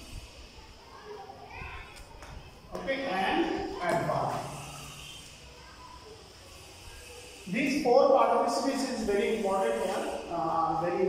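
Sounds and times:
faint children's voices: 0:00.0 - 0:11.0.

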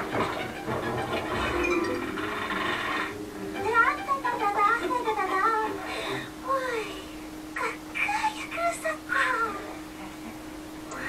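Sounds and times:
steady low hum: 0:01.5 - 0:11.0.

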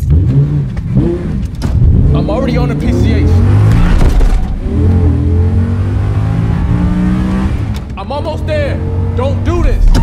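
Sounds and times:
car engine accelerating hard: 0:00.0 - 0:09.8.

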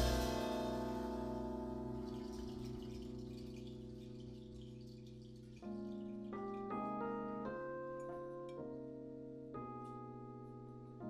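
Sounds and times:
drum hit: 0:00.0 - 0:01.3
cymbal shimmering: 0:00.0 - 0:01.6
piano chord ringing: 0:00.0 - 0:11.0
piano single notes: 0:00.0 - 0:11.0.

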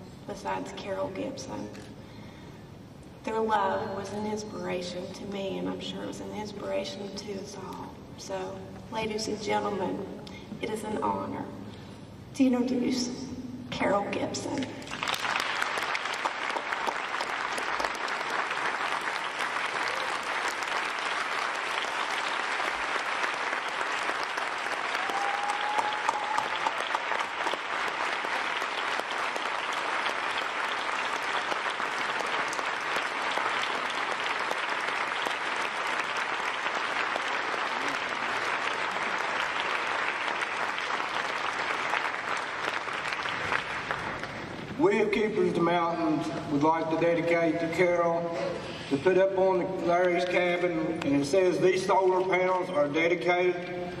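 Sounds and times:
audience applauding: 0:14.8 - 0:44.6.

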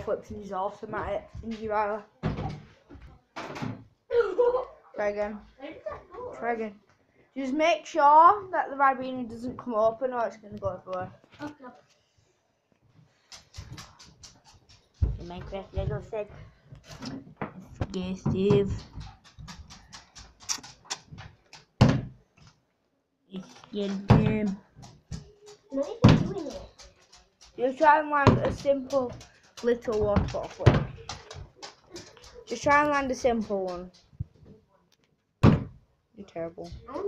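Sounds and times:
plastic bottle hitting floor: 0:20.4 - 0:22.2, 0:35.4 - 0:35.8
loud thump: 0:35.4 - 0:35.8.

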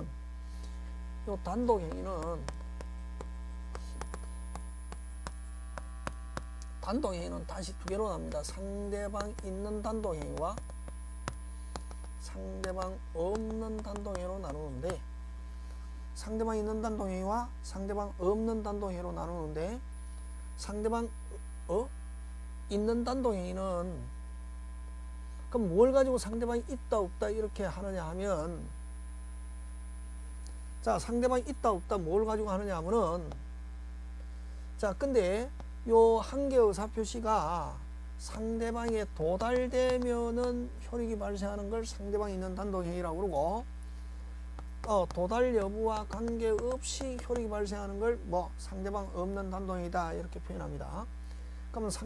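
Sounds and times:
low electrical hum: 0:00.0 - 0:52.0
chalk tapping on chalkboard: 0:01.4 - 0:15.0, 0:38.3 - 0:40.7, 0:44.6 - 0:47.9.

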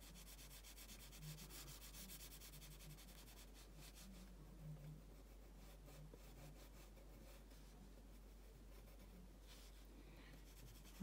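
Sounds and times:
pencil scratching on paper: 0:00.0 - 0:09.8, 0:10.4 - 0:11.0.

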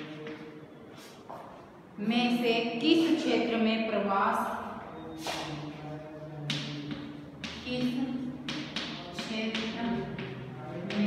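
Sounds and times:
chalk tapping and scraping: 0:00.0 - 0:01.6, 0:05.2 - 0:11.0.

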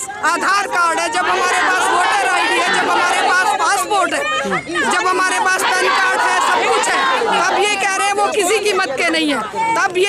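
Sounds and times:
chatter of voices: 0:00.0 - 0:10.0
woman speaking loudly: 0:00.0 - 0:10.0.

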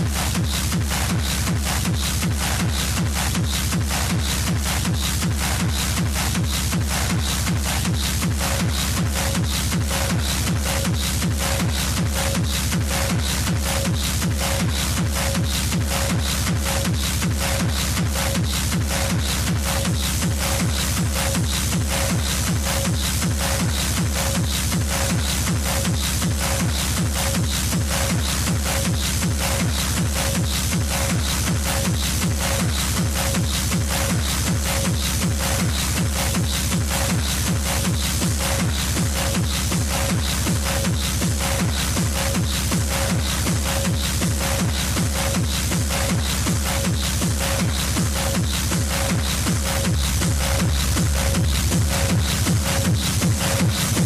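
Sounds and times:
techno kick drum: 0:00.0 - 0:54.0.

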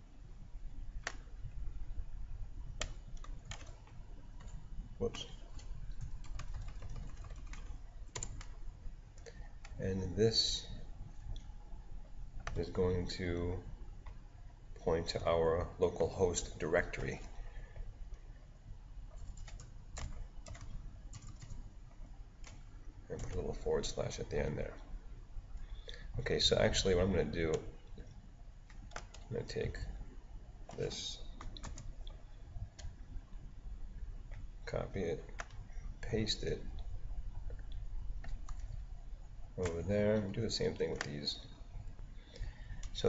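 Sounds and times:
low background hum: 0:00.0 - 0:43.0
keyboard typing: 0:01.0 - 0:01.5, 0:02.7 - 0:09.8, 0:12.4 - 0:12.8, 0:19.1 - 0:23.6, 0:28.7 - 0:29.8, 0:30.6 - 0:33.0, 0:35.3 - 0:35.7, 0:37.5 - 0:38.9.

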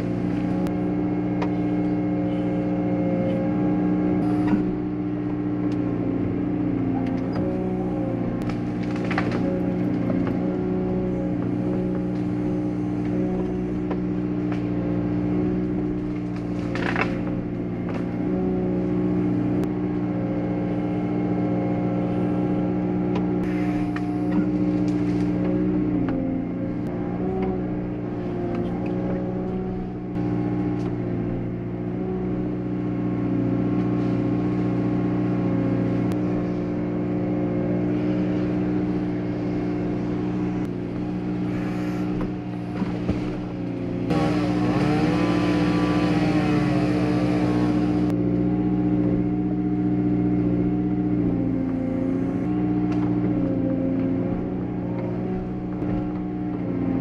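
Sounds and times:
excavator engine and hydraulics: 0:00.0 - 0:57.0.

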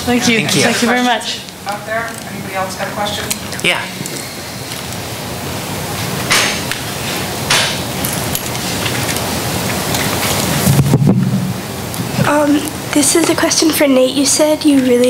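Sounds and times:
steady hiss: 0:00.0 - 0:15.0
low hum: 0:03.9 - 0:12.9
microphone handling noise: 0:10.1 - 0:12.3.

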